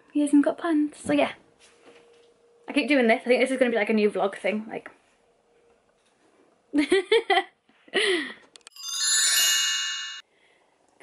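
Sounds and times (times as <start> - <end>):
woman laughing: 6.8 - 8.4
bright chime sound effect: 8.7 - 10.3.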